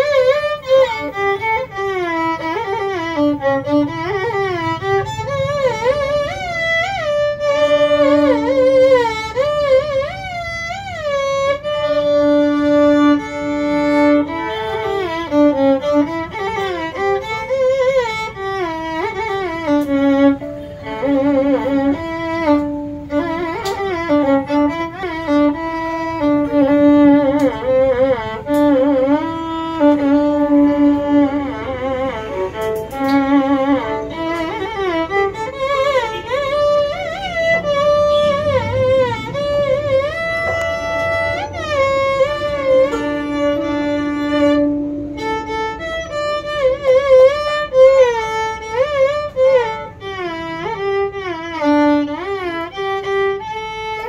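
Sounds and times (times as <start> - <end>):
solo violin melody: 0.0 - 54.0.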